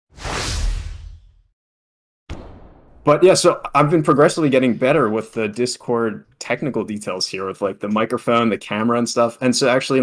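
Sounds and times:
whoosh: 0.1s - 1.5s, 2.3s - 3.1s.

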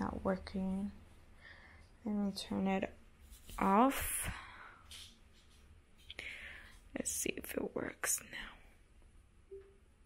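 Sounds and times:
soft breathy whisper: 8.1s - 8.8s.

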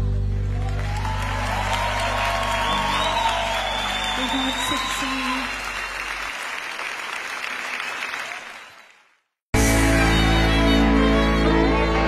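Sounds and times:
audience applauding: 0.2s - 9.3s
band's held note and bass: 9.6s - 12.0s.

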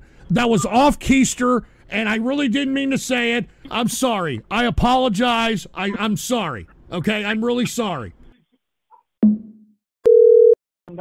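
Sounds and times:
steady telephone tone: 10.1s - 10.6s.

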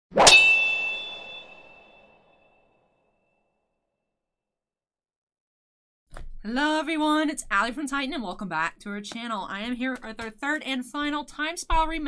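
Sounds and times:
ringing metallic clang: 0.2s - 2.5s.

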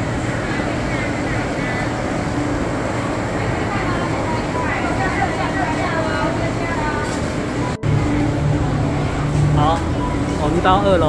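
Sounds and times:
people chattering: 0.0s - 11.0s
steady low hum: 0.0s - 11.0s.

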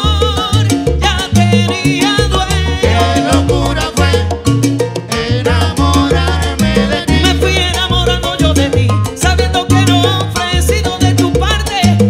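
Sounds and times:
salsa band playing live: 0.0s - 12.0s.

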